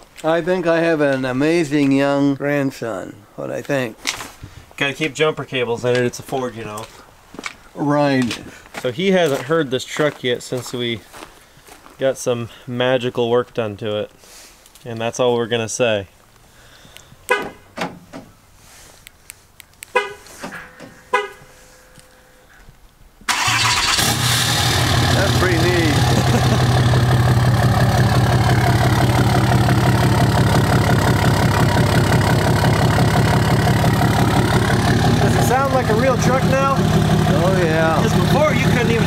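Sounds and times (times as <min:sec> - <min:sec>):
pickup engine starting and idling: 0:23.3 - 0:39.0.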